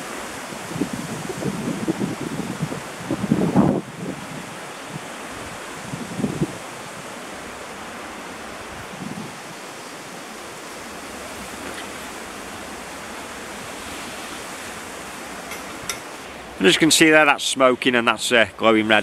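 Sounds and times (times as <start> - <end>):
wind buffeting microphone: 0.0 - 16.9
steady rush of wind: 0.0 - 19.0.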